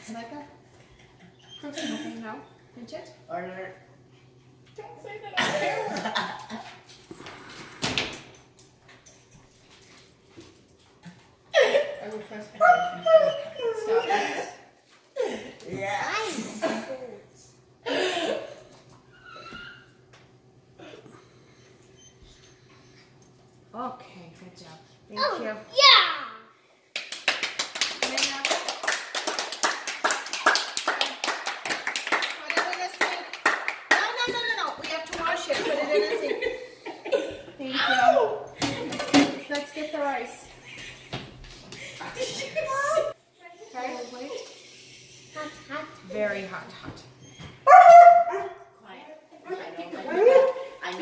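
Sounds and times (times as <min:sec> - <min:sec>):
dog whining: 0:12.6 - 0:14.5, 0:19.1 - 0:20.0
high-pitched dog cries: 0:12.6 - 0:14.5, 0:47.2 - 0:48.6
hands clapping: 0:26.9 - 0:35.3.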